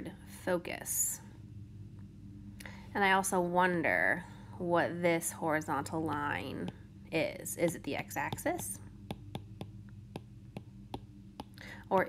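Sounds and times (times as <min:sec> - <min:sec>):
low steady hum: 0:00.0 - 0:12.0
stylus tapping on tablet screen: 0:07.6 - 0:11.7.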